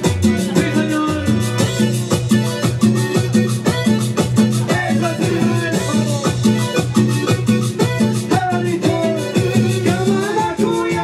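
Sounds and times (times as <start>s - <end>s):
band playing latin dance music: 0.0s - 11.0s.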